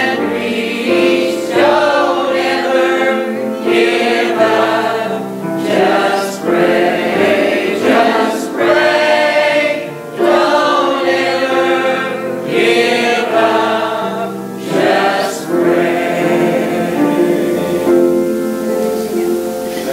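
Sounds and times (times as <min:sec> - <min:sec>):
choir singing gospel: 0:00.0 - 0:19.9.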